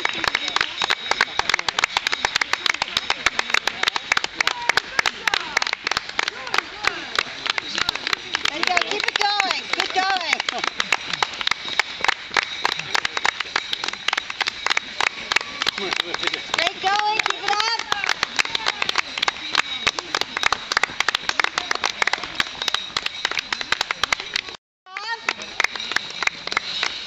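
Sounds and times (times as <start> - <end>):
voices: 0.0 - 27.0.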